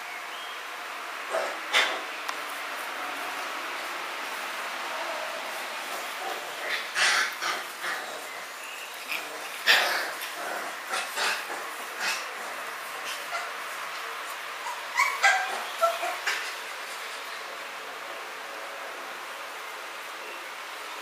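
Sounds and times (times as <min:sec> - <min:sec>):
puppies yipping and barking: 0:01.3 - 0:02.1, 0:05.0 - 0:17.5.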